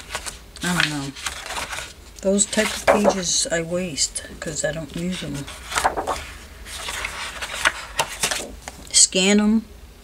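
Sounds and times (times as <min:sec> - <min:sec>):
paper rustling and crackling: 0:00.0 - 0:03.4, 0:05.0 - 0:08.8.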